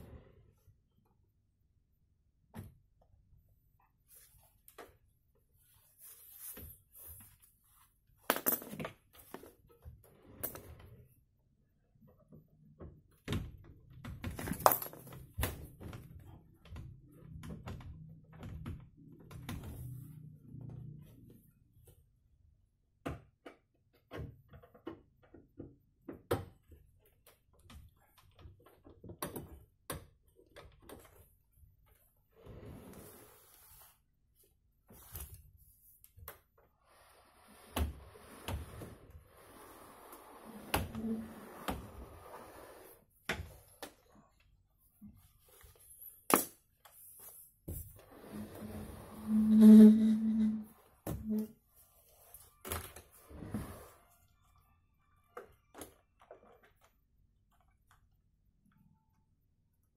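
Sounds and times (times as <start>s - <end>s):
metal scraping on rail: 48.2s - 50.8s.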